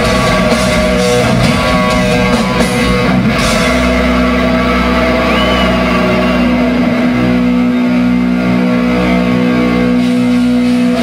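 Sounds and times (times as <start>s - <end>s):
distorted electric guitars: 0.0s - 11.0s
high whine: 0.0s - 11.0s
low bass drone: 0.0s - 11.0s.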